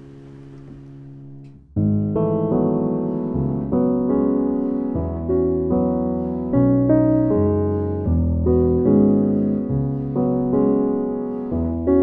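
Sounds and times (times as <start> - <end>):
digital piano chords and notes: 0.0 - 12.0.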